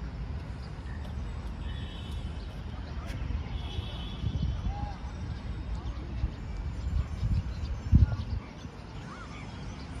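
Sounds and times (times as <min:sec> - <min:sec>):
distant traffic: 0:00.0 - 0:10.0
wind on microphone: 0:03.1 - 0:10.0.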